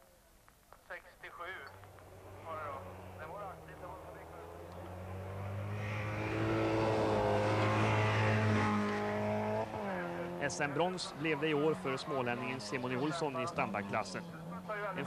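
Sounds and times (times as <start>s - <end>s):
rally car engine at high revs: 1.8s - 15.0s.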